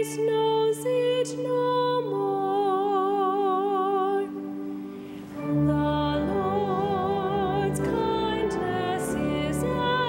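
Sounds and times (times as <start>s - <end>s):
woman singing with vibrato: 0.0s - 4.6s, 5.3s - 10.0s.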